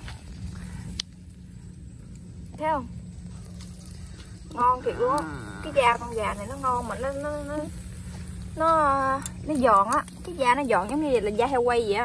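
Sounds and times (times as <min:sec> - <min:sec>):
steady low rumble: 0:00.0 - 0:12.0.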